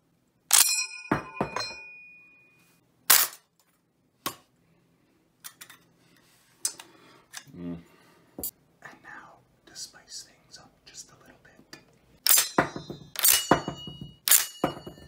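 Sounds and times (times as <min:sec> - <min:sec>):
metal clip ringing as it drops: 0:00.5 - 0:02.2, 0:12.3 - 0:15.0.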